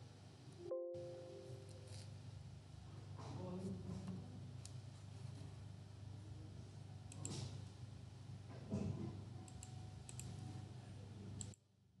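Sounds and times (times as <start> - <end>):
low room hum: 0.0 - 12.0
computer mouse clicking: 7.1 - 7.5, 9.5 - 10.4, 11.4 - 11.6.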